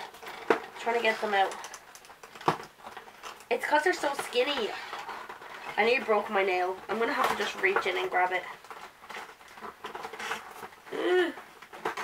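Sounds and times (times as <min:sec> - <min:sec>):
small clicks and rustles: 0:00.0 - 0:12.0.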